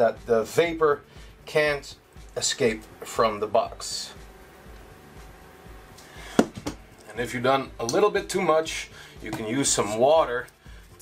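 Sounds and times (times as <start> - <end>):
tube knocking on mat: 6.4 - 6.8.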